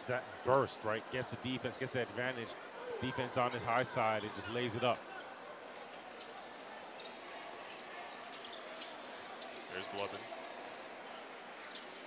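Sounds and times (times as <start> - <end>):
arena crowd murmur: 0.0 - 12.0.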